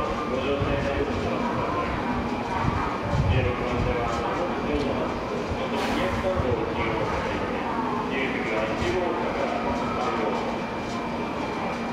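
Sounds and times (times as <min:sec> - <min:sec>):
people's voices: 0:00.0 - 0:11.9
train running on tracks: 0:00.0 - 0:11.9.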